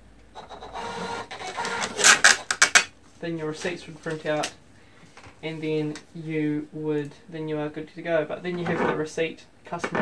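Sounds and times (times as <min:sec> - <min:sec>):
thermal receipt printer printing: 0:00.4 - 0:02.6.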